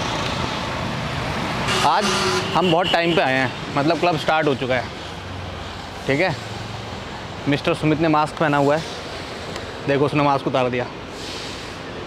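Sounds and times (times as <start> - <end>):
road traffic roar: 0.0 - 12.0.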